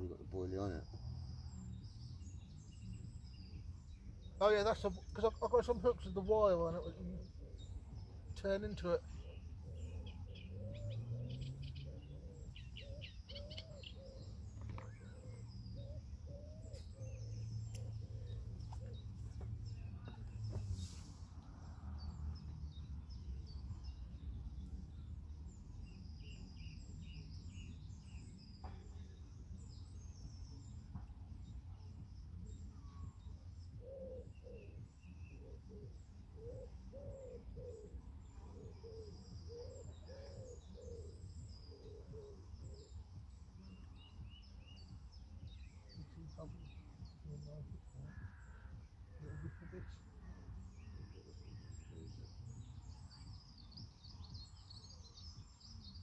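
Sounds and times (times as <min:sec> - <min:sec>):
small birds chirping: 0:00.0 - 0:56.0
pigeon cooing: 0:33.8 - 0:34.8, 0:35.4 - 0:42.7.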